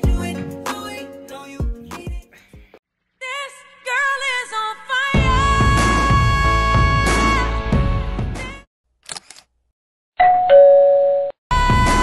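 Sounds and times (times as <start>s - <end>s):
background song: 0.0s - 8.7s.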